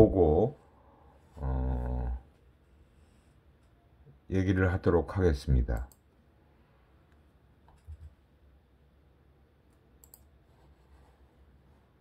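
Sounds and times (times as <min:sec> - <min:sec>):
faint low hum: 0:00.0 - 0:12.0
computer mouse clicks: 0:05.7 - 0:06.1, 0:09.7 - 0:10.4.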